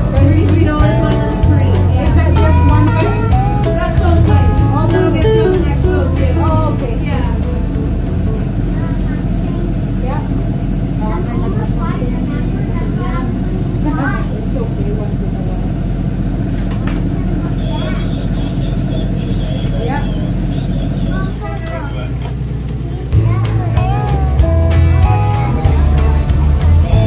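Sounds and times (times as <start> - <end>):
boat engine droning: 0.0 - 27.0
people talking: 0.0 - 27.0.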